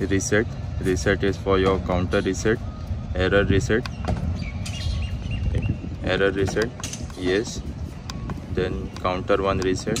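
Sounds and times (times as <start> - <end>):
faint bird chirps: 3.9 - 5.9.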